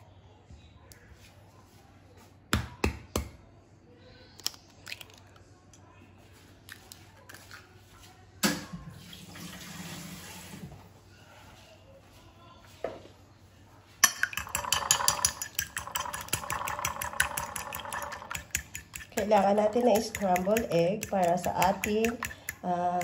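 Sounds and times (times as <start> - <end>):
eggshell clicking: 14.0 - 22.7
fork whisking egg on plate: 14.0 - 23.0.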